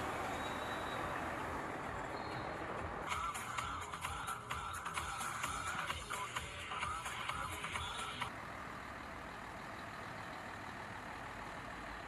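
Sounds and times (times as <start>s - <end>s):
street traffic hum: 0.0s - 12.0s.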